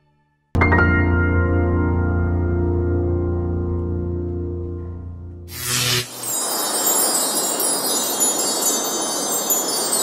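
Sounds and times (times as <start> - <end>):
high tinkling chimes: 5.5 - 10.0
rushing hiss: 5.5 - 10.0.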